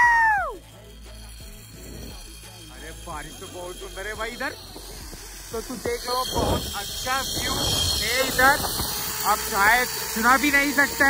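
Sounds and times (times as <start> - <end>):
wind rushing over microphone: 5.8 - 9.2.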